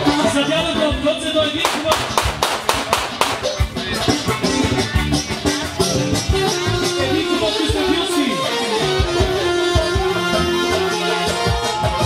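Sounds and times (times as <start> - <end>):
band music: 0.0 - 12.0
quick even handclapping: 1.6 - 3.6.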